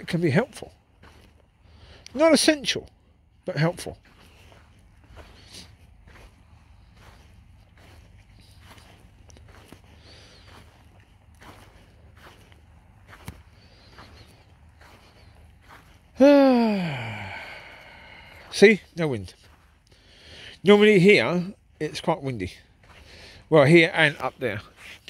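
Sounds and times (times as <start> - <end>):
footsteps on a path: 0.0 - 25.0
man's voice saying ahh: 16.2 - 18.8.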